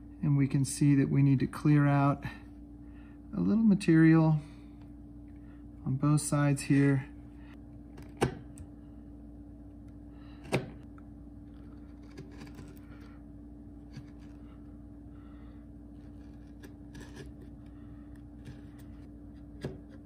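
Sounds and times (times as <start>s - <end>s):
steady low hum: 0.0s - 20.0s
chisel scraping wood: 11.5s - 13.2s, 13.8s - 14.6s, 15.9s - 20.0s.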